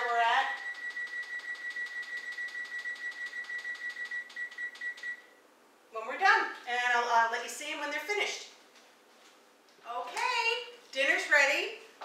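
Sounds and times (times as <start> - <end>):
oven timer beeping rapidly: 0.4 - 5.3.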